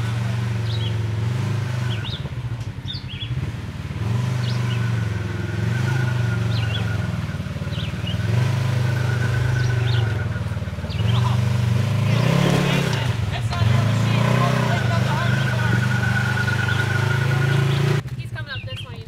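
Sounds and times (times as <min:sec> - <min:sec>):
utility vehicle engine revving: 0:00.0 - 0:19.0.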